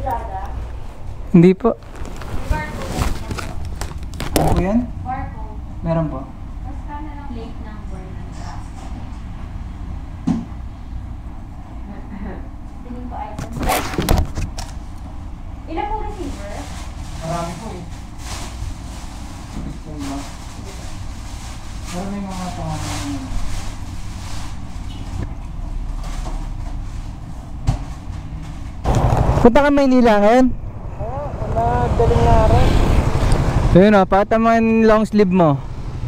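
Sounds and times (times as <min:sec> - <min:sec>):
low room hum: 0:00.0 - 0:36.0
two people talking: 0:01.2 - 0:09.2, 0:15.6 - 0:18.2, 0:19.5 - 0:23.5, 0:29.4 - 0:35.6.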